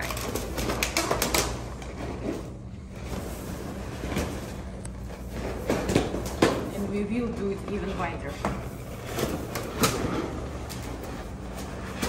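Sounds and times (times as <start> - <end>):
latex balloons rubbing and knocking: 0.0 - 12.0.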